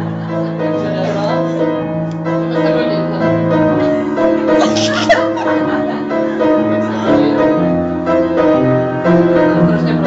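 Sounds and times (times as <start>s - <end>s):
piano-like keyboard chords: 0.0s - 10.0s.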